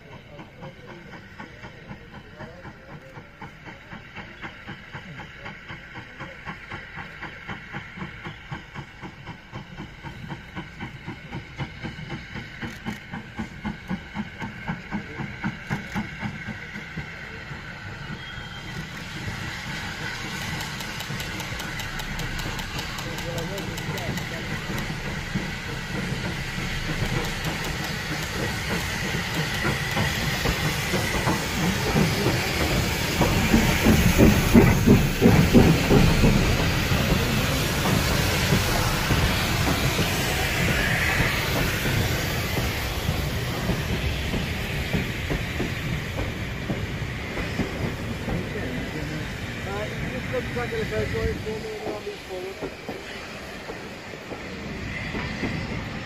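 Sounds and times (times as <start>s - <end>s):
steam hissing: 0.0s - 56.0s
steam locomotive passing: 0.0s - 56.0s.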